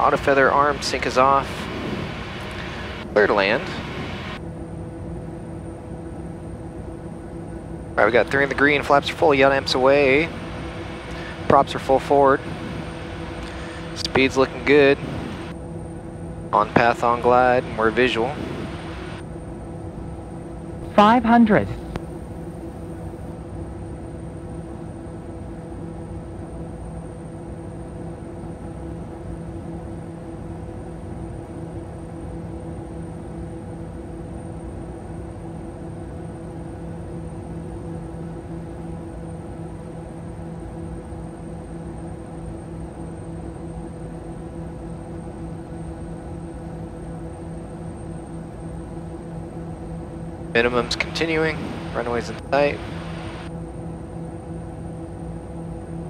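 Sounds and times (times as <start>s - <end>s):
turboprop cockpit drone: 0.0s - 56.0s.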